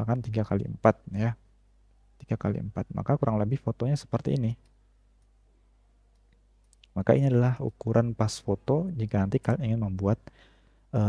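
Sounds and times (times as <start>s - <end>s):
computer mouse clicks: 6.1s - 7.0s.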